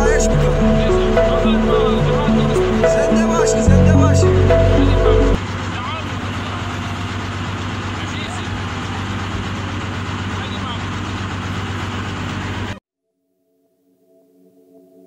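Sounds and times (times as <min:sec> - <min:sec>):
man talking: 0:00.0 - 0:04.9
background music: 0:00.0 - 0:05.4.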